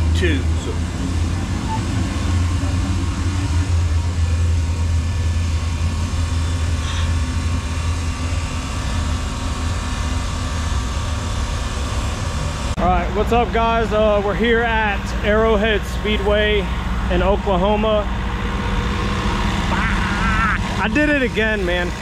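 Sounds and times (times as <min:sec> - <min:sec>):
low mechanical machinery hum: 0:00.0 - 0:22.0.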